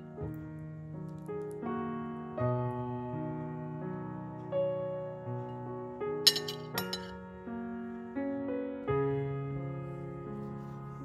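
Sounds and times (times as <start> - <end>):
gentle piano music: 0.0 - 11.0
fork clinking on plate: 6.3 - 7.2.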